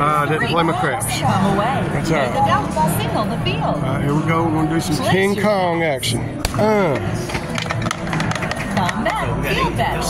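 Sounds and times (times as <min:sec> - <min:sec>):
casino background chatter: 0:00.0 - 0:10.0
dice rattling in plastic dome: 0:07.3 - 0:09.1.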